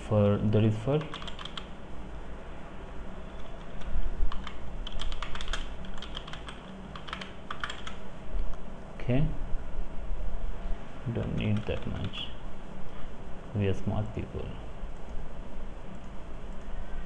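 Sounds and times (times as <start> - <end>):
typing on keyboard: 1.0 - 1.7, 3.4 - 8.0, 11.3 - 12.2.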